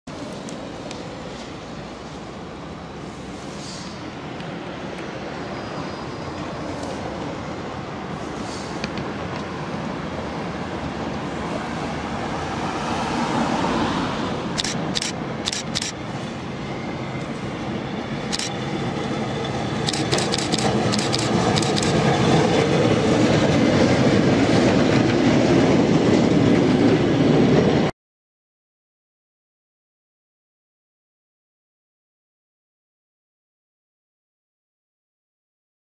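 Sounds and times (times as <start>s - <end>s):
street traffic: 0.1s - 27.9s
tram running rumble: 0.1s - 27.9s
wheels clicking over rail joints: 19.8s - 22.7s.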